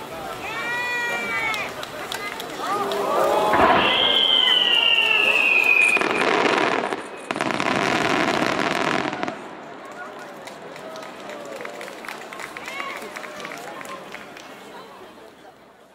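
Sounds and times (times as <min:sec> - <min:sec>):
firework bursts and crackling: 0:00.0 - 0:14.8
faint voices: 0:00.0 - 0:15.9
firework whistle: 0:03.4 - 0:09.3.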